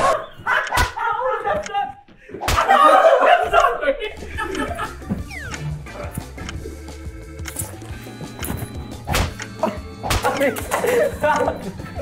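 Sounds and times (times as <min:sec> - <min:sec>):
excited voices: 0:00.0 - 0:04.9
people laughing: 0:00.0 - 0:05.2, 0:09.6 - 0:12.0.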